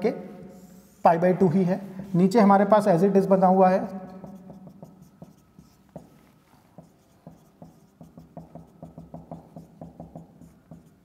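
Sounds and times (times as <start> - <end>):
marker writing on whiteboard: 4.0 - 11.0.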